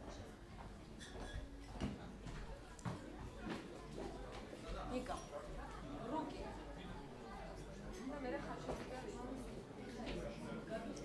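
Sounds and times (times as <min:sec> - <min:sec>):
faint murmur of voices: 0:00.0 - 0:11.0.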